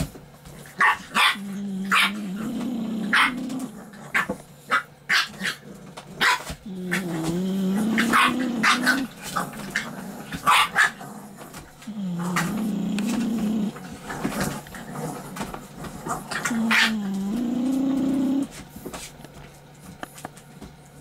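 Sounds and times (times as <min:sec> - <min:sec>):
puppy growling: 0:00.5 - 0:18.8
puppy yapping: 0:00.8 - 0:02.4, 0:03.0 - 0:05.6, 0:06.2 - 0:11.0, 0:16.3 - 0:18.5.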